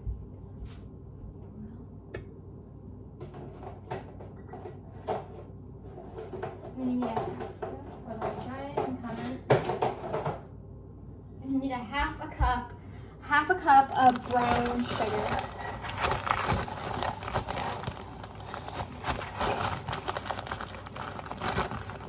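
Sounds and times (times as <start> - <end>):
kitchen cupboards and items knocking: 6.0 - 10.5.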